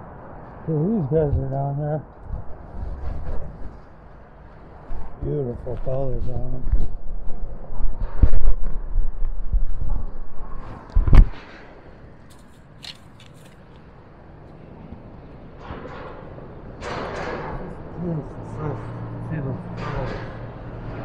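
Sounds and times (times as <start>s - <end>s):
handling rumbling and scraping: 0.5s - 11.4s, 12.2s - 18.1s.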